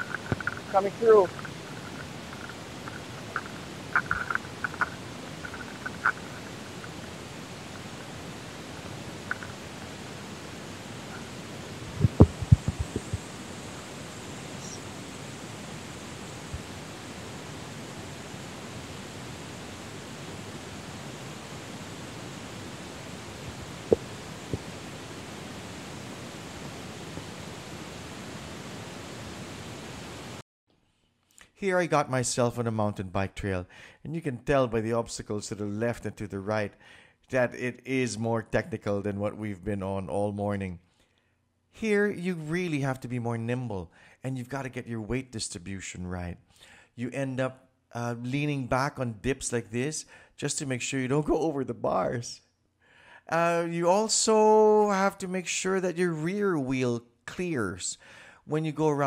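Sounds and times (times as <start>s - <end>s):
sharp clicks: 0.0s - 7.2s
tyres rolling over dirt: 0.0s - 10.2s
wind on microphone: 0.0s - 30.4s.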